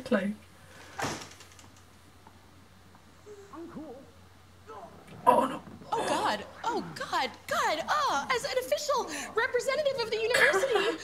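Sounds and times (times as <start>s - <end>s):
faint voice sounds: 3.2s - 7.0s.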